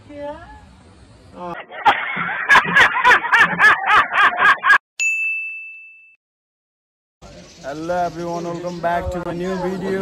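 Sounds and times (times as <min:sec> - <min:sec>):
man laughing loudly: 0:01.5 - 0:04.8
bright ding sound effect: 0:05.0 - 0:06.2.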